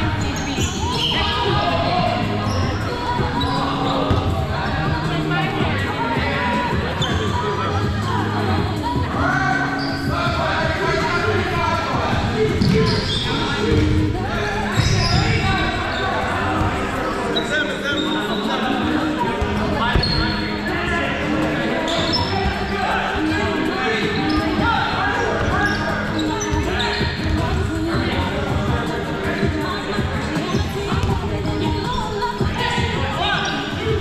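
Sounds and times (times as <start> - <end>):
players calling out in echoing gym: 0.0 - 34.0
dodgeballs thudding: 0.6 - 5.0, 12.0 - 15.8, 24.2 - 28.8.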